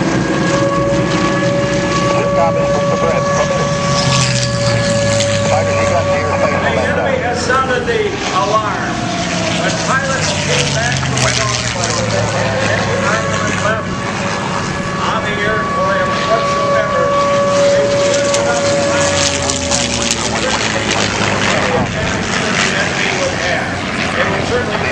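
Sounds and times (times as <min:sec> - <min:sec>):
crowd voices: 0:00.0 - 0:24.9
propeller airplanes droning: 0:00.0 - 0:24.9.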